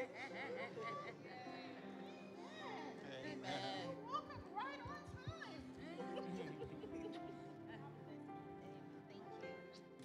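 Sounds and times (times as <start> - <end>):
soft keyboard music: 0.0 - 10.0.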